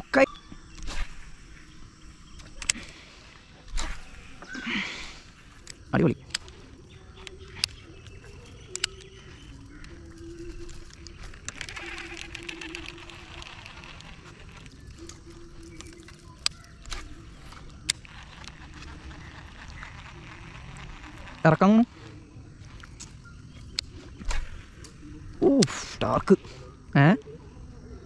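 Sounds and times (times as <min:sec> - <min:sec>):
birds calling and chirring: 0:00.0 - 0:28.0.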